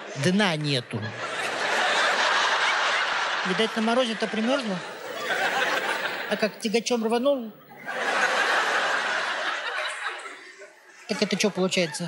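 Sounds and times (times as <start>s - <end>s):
studio audience laughing: 0.9s - 12.0s.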